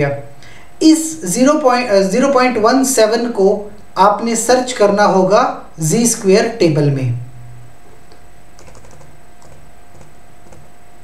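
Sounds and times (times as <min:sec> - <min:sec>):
faint electrical hum with whine: 0:00.0 - 0:11.0
computer keyboard clicks: 0:08.6 - 0:10.7.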